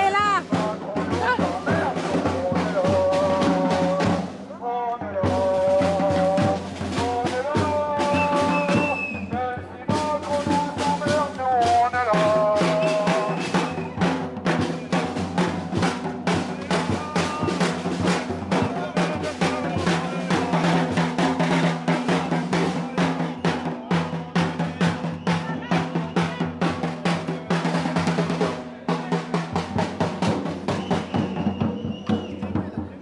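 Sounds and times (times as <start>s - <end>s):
marching drum beaten with sticks: 0.0s - 33.0s.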